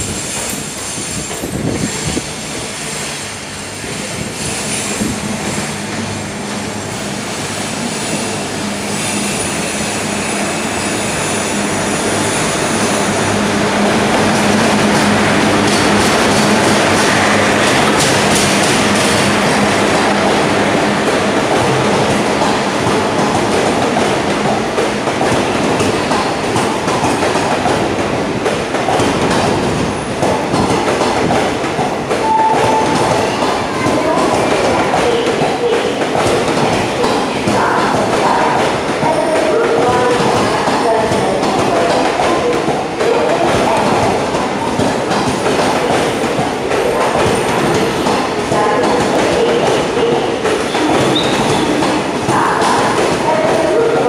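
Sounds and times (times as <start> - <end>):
train wheel squeal: 0.0 - 5.8, 7.3 - 13.1, 50.6 - 51.9.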